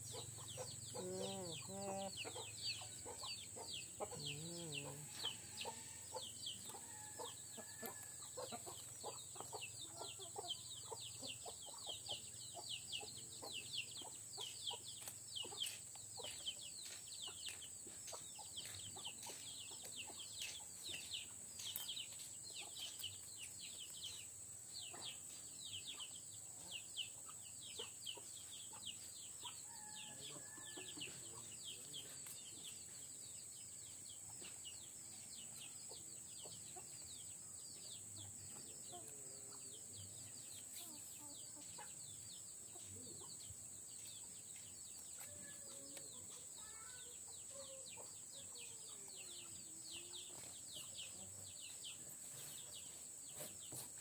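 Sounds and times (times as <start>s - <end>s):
chickens clucking: 0.0s - 33.2s, 37.8s - 54.0s.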